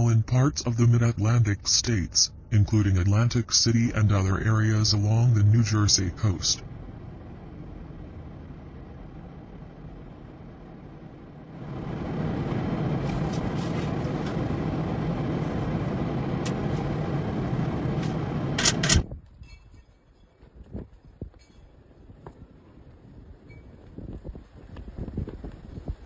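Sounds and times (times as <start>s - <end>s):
car engine and road noise: 0.0s - 19.2s.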